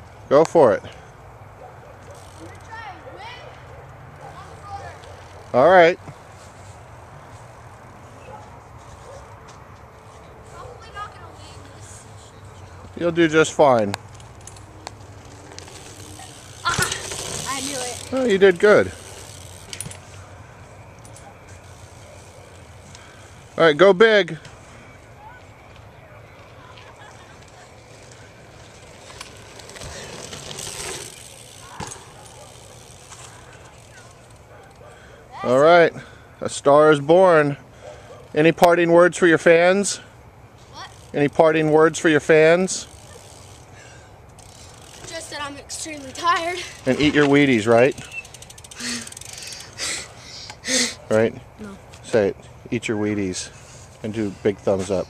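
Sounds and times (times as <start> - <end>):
bike tyres on dirt track: 0.0 - 51.2
outdoor background noise with rumble: 0.0 - 55.0.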